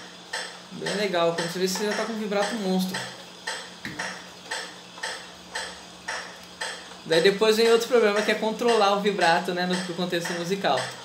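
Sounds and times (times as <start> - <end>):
faint steady hum: 0.0 - 11.0
metronome ticking: 0.3 - 11.0.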